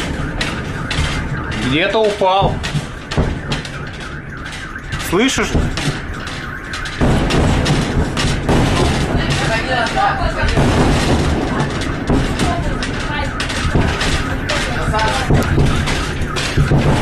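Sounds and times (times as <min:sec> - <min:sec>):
low rumbling: 0:00.0 - 0:17.0.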